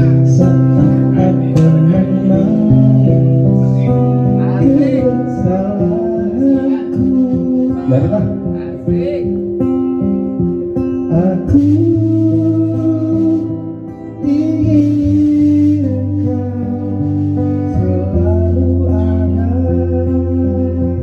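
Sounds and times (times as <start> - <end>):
band playing live: 0.0 - 21.0
bass line: 0.0 - 21.0
guitar chords: 0.0 - 21.0.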